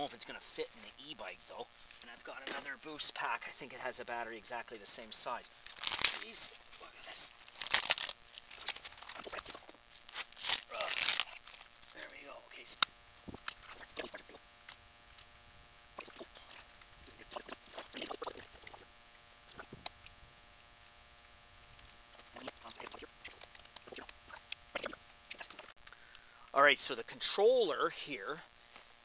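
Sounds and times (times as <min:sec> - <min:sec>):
plastic wrapping rustling: 0:05.5 - 0:12.2.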